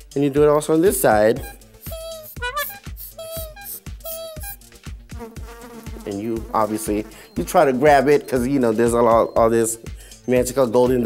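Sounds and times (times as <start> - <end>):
background music with steady beat: 0.0 - 11.0
housefly buzzing: 1.4 - 7.4.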